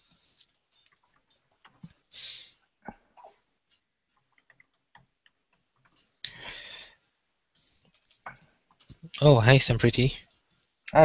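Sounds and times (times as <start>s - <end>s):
keyboard and mouse clicks: 2.9s - 6.1s.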